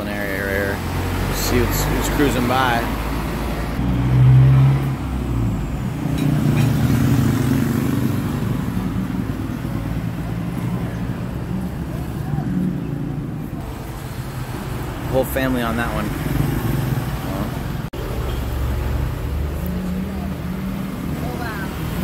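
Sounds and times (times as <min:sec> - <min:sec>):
scooters and cars passing: 0:00.0 - 0:22.0.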